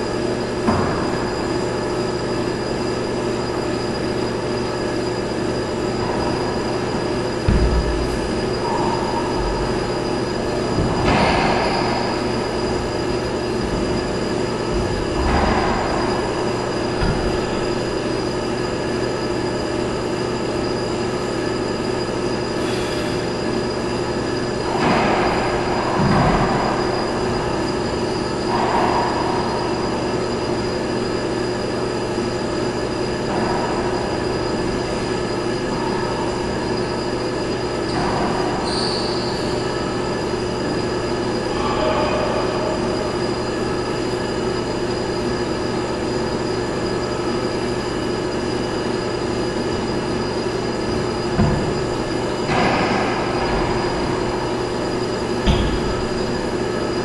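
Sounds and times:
mechanical drone with whining tones: 0.0s - 57.0s.

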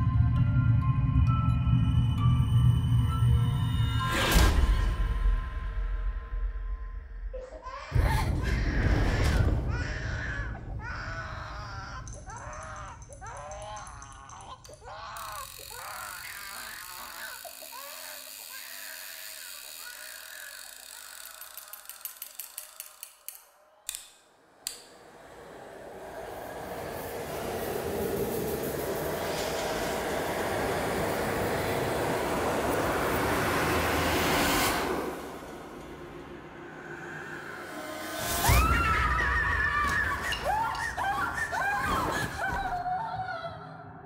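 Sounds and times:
quickening clicks: 11.9s - 24.8s
noisy swell: 24.4s - 39.3s.

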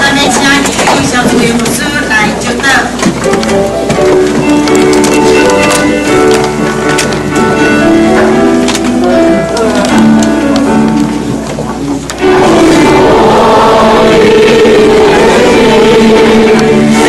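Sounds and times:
stepped instrumental notes: 0.0s - 17.0s
many voices singing a hymn: 12.2s - 17.0s.

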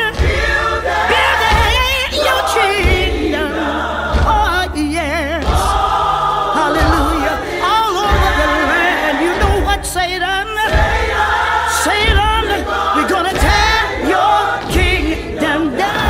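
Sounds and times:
band playing with low beat: 0.0s - 16.0s
gospel choir singing: 0.0s - 16.0s.

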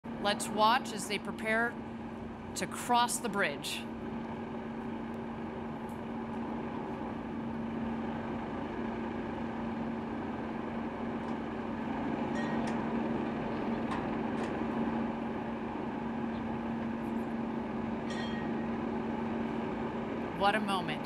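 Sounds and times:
mechanical equipment hum: 0.0s - 21.0s.

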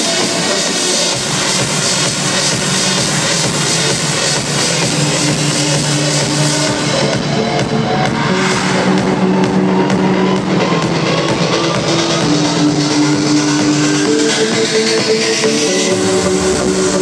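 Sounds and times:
loud electronic dance music: 0.0s - 17.0s.

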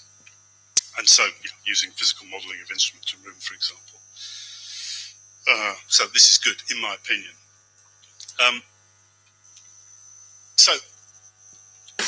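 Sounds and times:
faint high-pitched whine: 0.0s - 12.0s
low electrical mains hum: 0.0s - 12.0s.

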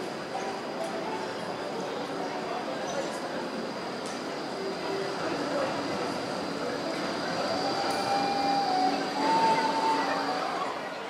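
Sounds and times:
tram rolling noise: 0.0s - 11.0s
tram whining tone: 3.8s - 11.0s.

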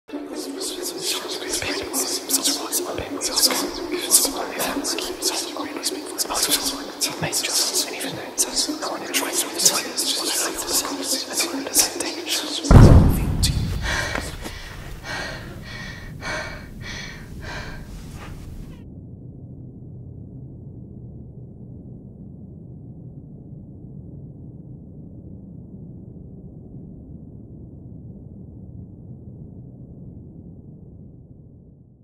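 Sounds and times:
steady low rumble: 12.7s - 31.6s
girl gasping for breath: 13.6s - 18.7s.

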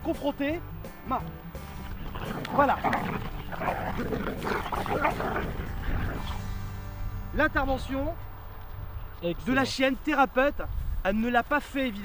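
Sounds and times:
dogs scuffling and growling: 1.5s - 6.6s.

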